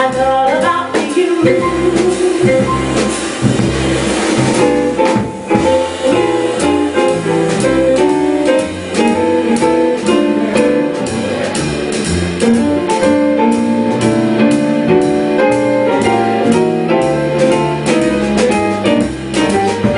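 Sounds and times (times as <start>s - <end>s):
drums and cymbals: 0.0s - 19.9s
piano chords: 0.0s - 19.9s
plucked upright bass: 0.0s - 19.9s.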